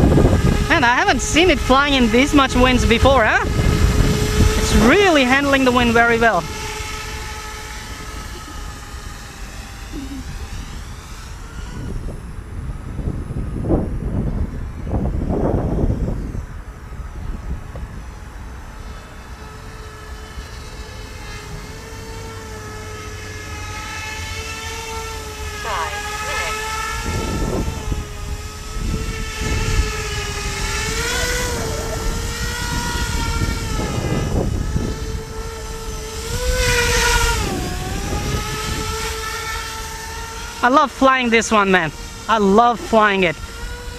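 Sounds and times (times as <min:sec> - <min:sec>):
electric rotors whining: 0:00.0 - 0:43.9
wind buffeting microphone: 0:00.0 - 0:43.9.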